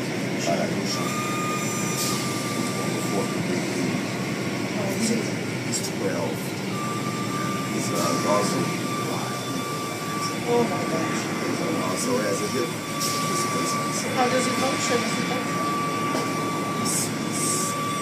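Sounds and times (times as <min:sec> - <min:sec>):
car wash machinery running: 0:00.0 - 0:18.0
thin high whine: 0:00.4 - 0:18.0
faint voices: 0:07.4 - 0:17.8.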